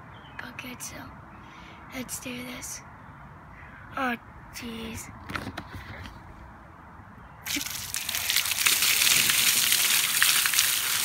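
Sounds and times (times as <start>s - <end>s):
water gushing and splashing: 7.4s - 11.0s.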